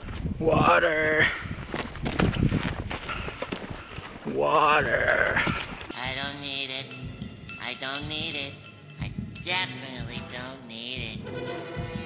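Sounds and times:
footsteps crunching on dirt: 0:00.0 - 0:00.4, 0:01.5 - 0:04.4
wind buffeting microphone: 0:00.0 - 0:05.9.

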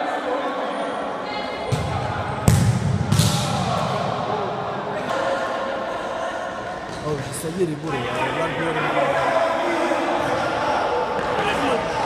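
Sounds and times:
ball kicked on indoor court: 0:01.6 - 0:04.3.

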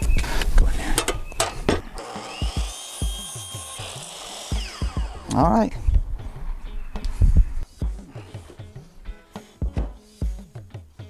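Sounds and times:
miter saw cutting wood: 0:01.9 - 0:05.4.

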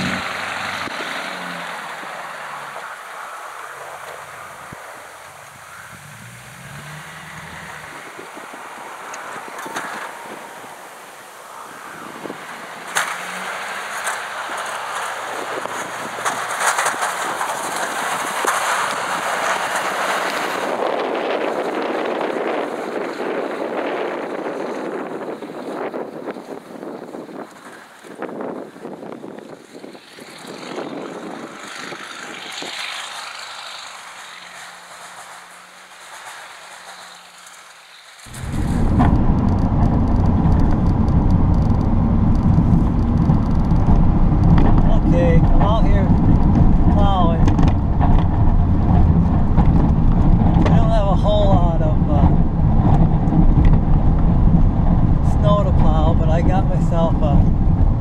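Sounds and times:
wind across microphone: 0:00.0 - 0:35.7, 0:38.3 - 0:58.0
diesel engine drone in cab: 0:38.3 - 0:58.0
distant diesel pickup: 0:38.3 - 0:58.0.

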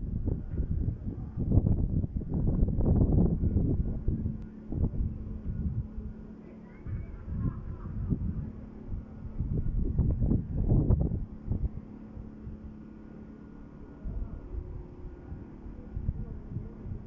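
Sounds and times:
wind buffeting microphone: 0:00.0 - 0:12.9, 0:13.8 - 0:17.0
steady low hum: 0:00.0 - 0:17.0.

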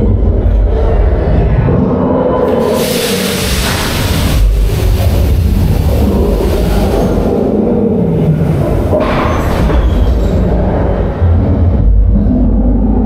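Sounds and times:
roller coaster rumbling on track: 0:00.0 - 0:13.0.

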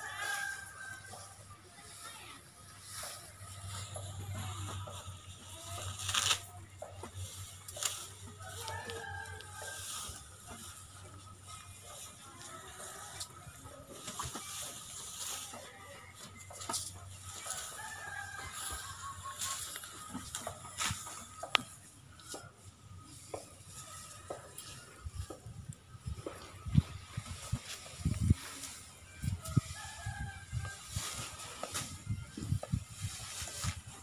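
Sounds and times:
rustling: 0:00.0 - 0:22.4, 0:26.0 - 0:34.0.

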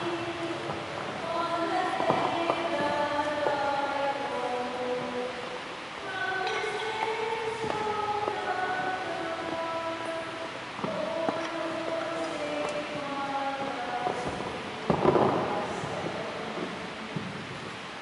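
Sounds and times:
choir singing a hymn: 0:00.0 - 0:16.7.

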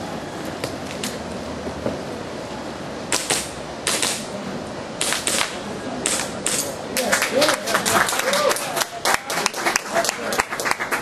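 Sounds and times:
airsoft pistol shots: 0:03.1 - 0:04.3, 0:05.0 - 0:06.7.

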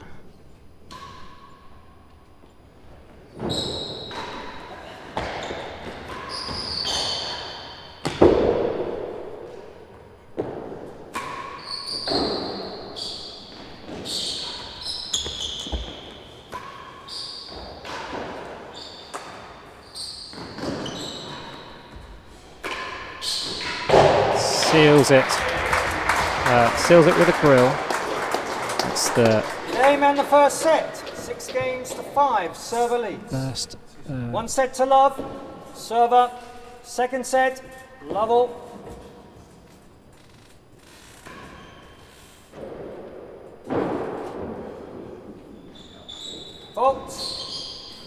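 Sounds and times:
ball knocking off walls echoing: 0:08.0 - 0:09.4, 0:22.6 - 0:32.2, 0:42.5 - 0:45.5
rackets striking ball: 0:08.0 - 0:09.6, 0:22.6 - 0:32.2
short high squeaks: 0:19.8 - 0:21.9.

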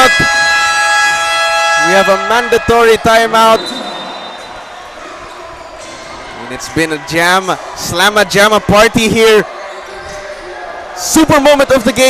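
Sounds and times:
scoreboard horn long tone: 0:00.0 - 0:04.4.

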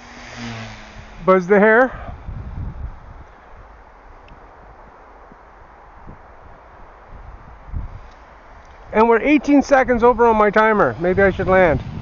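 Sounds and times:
low wind gusts buffeting: 0:00.0 - 0:12.0
wind rushing over microphone: 0:00.0 - 0:12.0.

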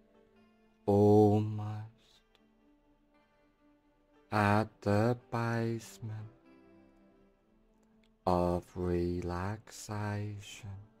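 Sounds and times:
man speaking slowly: 0:00.8 - 0:02.4, 0:04.3 - 0:06.4, 0:08.1 - 0:11.0.

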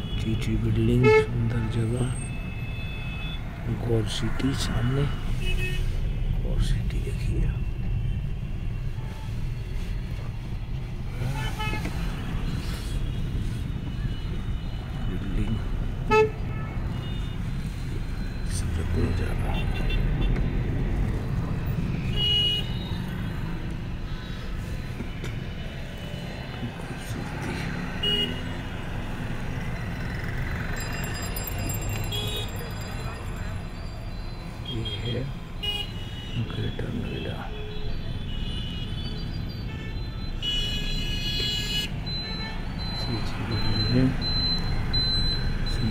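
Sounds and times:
vehicle engine and road rumble: 0:00.0 - 0:45.9
car horn honks: 0:16.0 - 0:17.4, 0:19.5 - 0:20.4, 0:22.1 - 0:23.0, 0:28.0 - 0:28.6, 0:34.6 - 0:42.7.

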